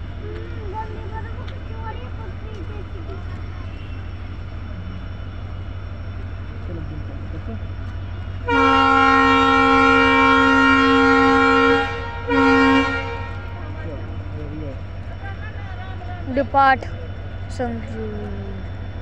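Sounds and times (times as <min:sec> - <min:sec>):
steady low rumble: 0:00.0 - 0:19.0
locomotive horn blasts: 0:08.4 - 0:13.8.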